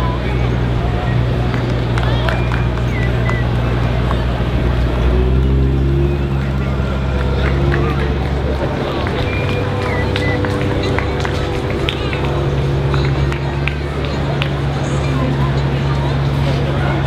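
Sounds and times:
crowd chatter: 0.0s - 17.0s
vehicle engine running: 0.0s - 17.0s.

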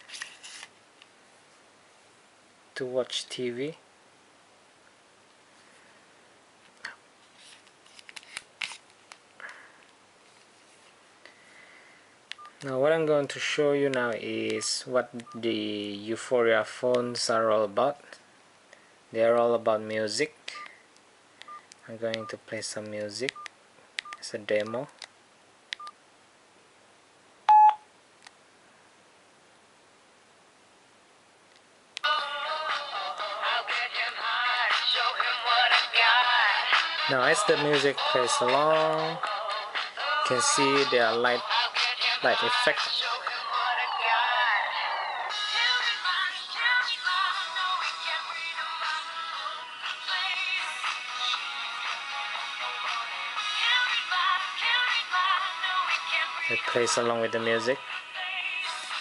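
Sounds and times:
phone keypad beeps: 27.5s - 27.8s
pop song with singing from phone speaker: 32.0s - 59.0s.

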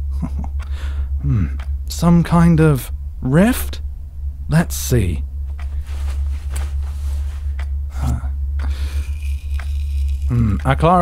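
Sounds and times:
steady low hum: 0.0s - 11.0s
rustling and scraping of handling: 5.5s - 7.6s.

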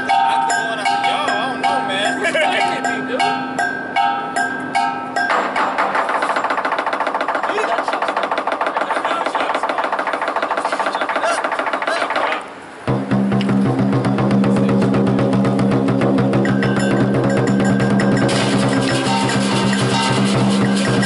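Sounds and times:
gong: 0.0s - 5.8s, 12.9s - 21.0s
drum roll: 5.2s - 21.0s
cymbals: 12.9s - 21.0s.

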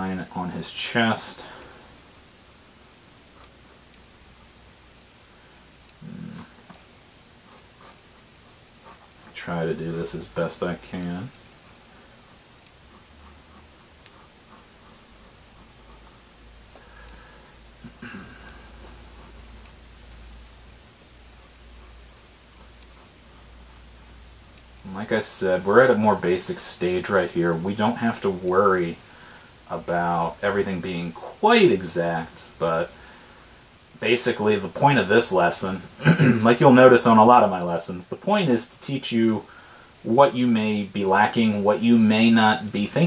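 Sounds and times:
faint low hum: 0.0s - 43.0s
pencil scratching on paper: 0.7s - 5.0s, 7.5s - 10.5s, 11.6s - 16.3s, 17.9s - 20.2s, 21.3s - 28.5s.

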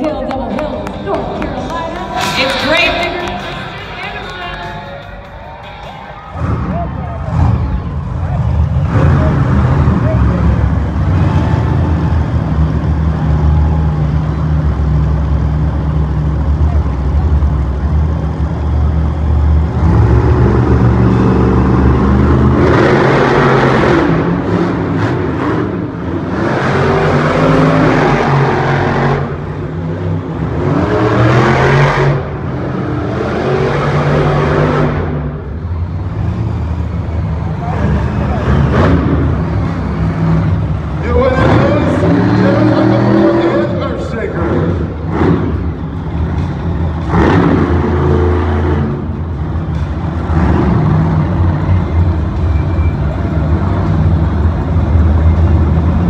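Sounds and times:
monster truck engines roaring: 0.0s - 56.0s
engines revving hard: 6.1s - 56.0s.

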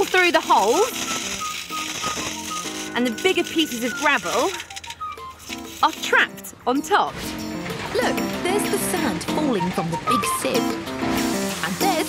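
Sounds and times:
sand rattling in metal sieve: 0.0s - 6.4s
background music: 0.0s - 12.0s.

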